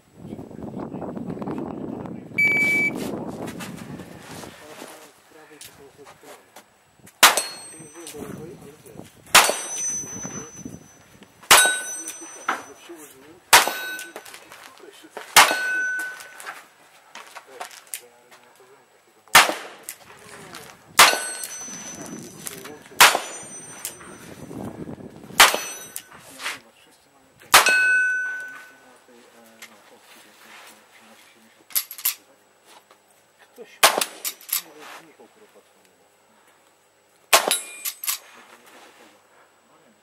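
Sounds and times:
rifle shots: 7.2 - 7.6, 9.3 - 10.2, 11.5 - 12.2, 13.5 - 14.4, 15.4 - 16.4, 19.3 - 20.0, 21.0 - 22.0, 23.0 - 24.1, 25.4 - 25.9, 27.5 - 28.7, 33.8 - 34.3, 37.3 - 37.7
bullet ringing on steel plate: 7.2 - 8.2, 9.3 - 12.8, 13.5 - 14.4, 15.4 - 16.6, 21.0 - 24.5, 25.4 - 26.2, 27.5 - 28.8, 37.4 - 38.2.

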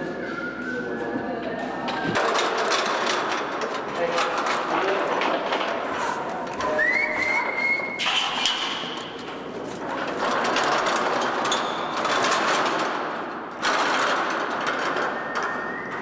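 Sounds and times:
metal frame rattling and clanking: 2.0 - 16.0.

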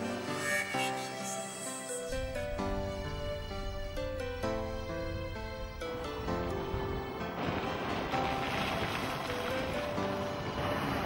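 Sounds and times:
background music: 0.0 - 11.0
car tyre and wind noise: 2.6 - 11.0.

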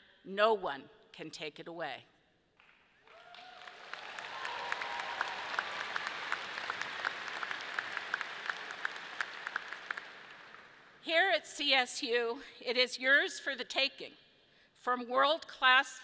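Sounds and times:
audience applauding: 2.6 - 11.0.

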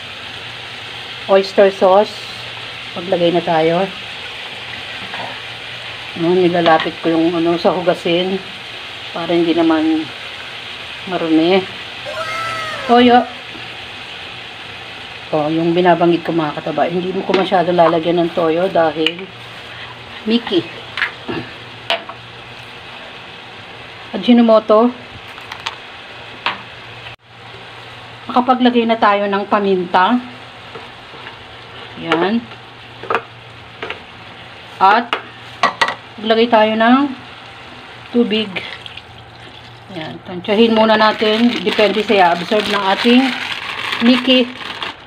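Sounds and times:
food sizzling in a pan: 0.0 - 39.9.

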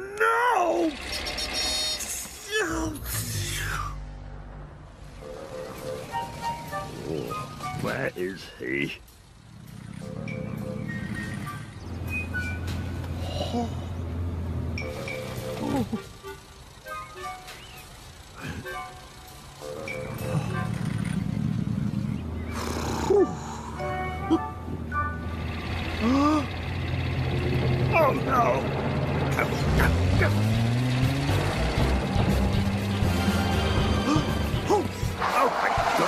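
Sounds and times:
small car engine humming: 0.0 - 36.0
cartoon background music: 5.2 - 8.2, 14.8 - 21.2, 23.1 - 25.4, 29.4 - 36.0.

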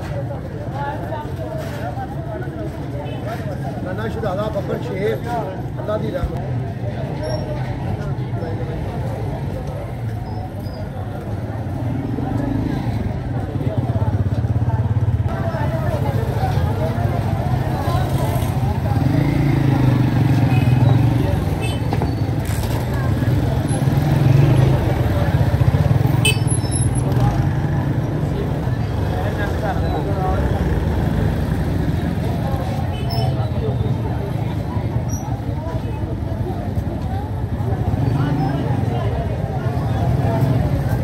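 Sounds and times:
crowd chatter: 0.0 - 41.0
motorcycle engines running: 5.3 - 41.0.

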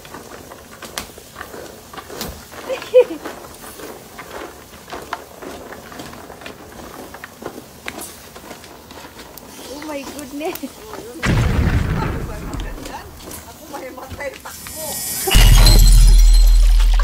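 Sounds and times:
burning shells crackling and popping: 0.0 - 17.0.

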